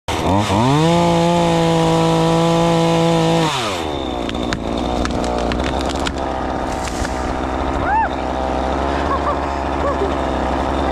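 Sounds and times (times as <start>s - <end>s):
electric chainsaw whining: 0.1s - 10.9s
wood knocking and cracking: 4.2s - 7.2s.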